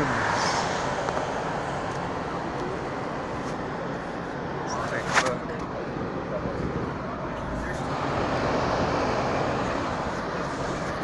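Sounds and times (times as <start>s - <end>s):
car passing: 0.0s - 11.0s
road and tyre noise: 0.0s - 11.0s.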